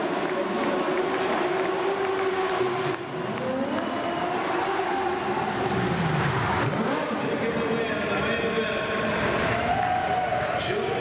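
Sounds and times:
racing sidecar engines: 0.0 - 11.0.

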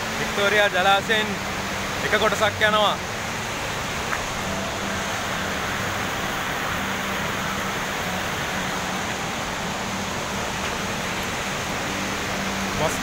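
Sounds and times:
waterfall roaring: 0.0 - 13.0.

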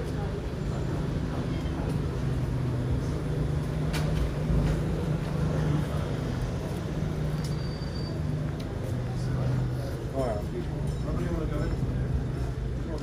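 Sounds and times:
low street hum: 0.0 - 13.0
traffic noise: 0.0 - 13.0.

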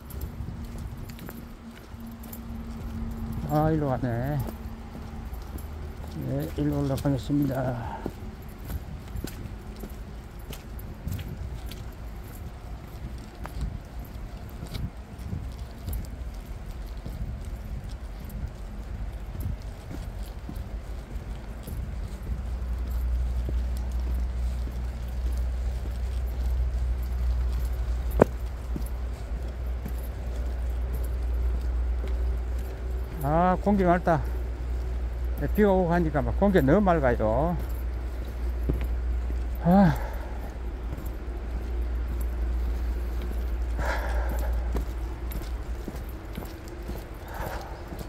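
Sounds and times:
low rumble: 0.0 - 33.4
footsteps on dirt trail: 0.0 - 48.0.

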